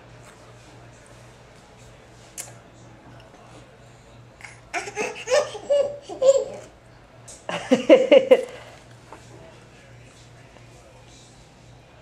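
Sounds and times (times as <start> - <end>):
toddler laughing: 4.8 - 6.7.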